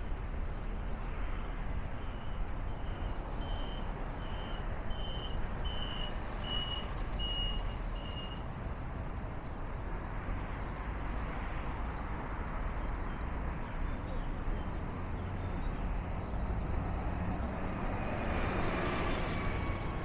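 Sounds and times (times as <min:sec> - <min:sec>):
road traffic noise: 0:00.0 - 0:20.0.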